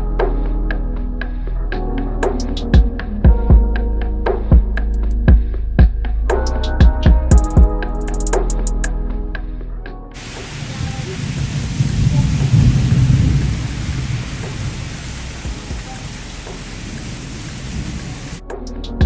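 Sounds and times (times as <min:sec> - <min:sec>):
heavy rain: 0:10.2 - 0:18.4
low roll of thunder: 0:10.2 - 0:18.4.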